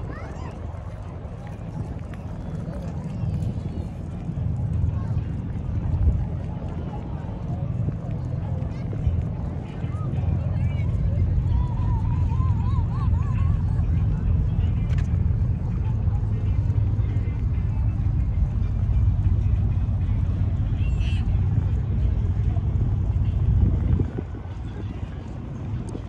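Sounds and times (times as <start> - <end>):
faint voices of passersby: 0.0 - 26.0
steady low rumble: 0.0 - 26.0.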